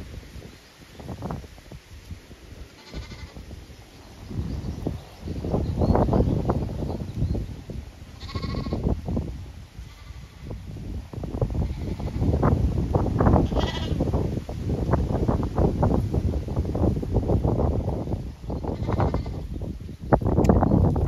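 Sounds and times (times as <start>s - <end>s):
sheep bleating: 2.8s - 3.4s, 8.2s - 8.8s, 13.4s - 14.0s.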